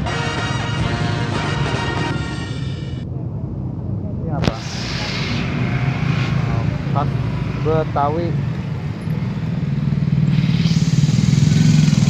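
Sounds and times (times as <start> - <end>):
motor traffic rumble: 0.0 - 12.0
rushing hiss: 4.4 - 7.6, 10.2 - 12.0.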